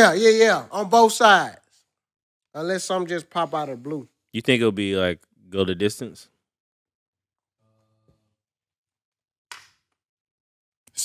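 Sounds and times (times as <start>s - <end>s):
man talking: 0.0s - 1.6s, 2.6s - 6.2s.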